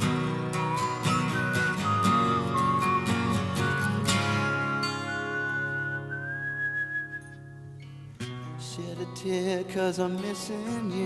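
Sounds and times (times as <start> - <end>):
person whistling a melody: 0.0 - 7.8
acoustic guitar chords: 0.0 - 11.0.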